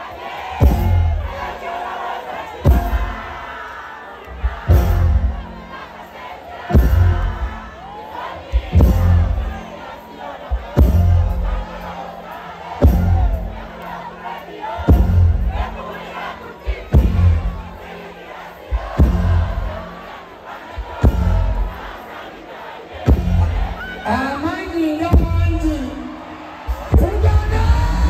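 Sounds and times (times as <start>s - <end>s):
crowd shouting and cheering: 0.0s - 28.0s
live concert music with heavy bass: 0.0s - 28.0s.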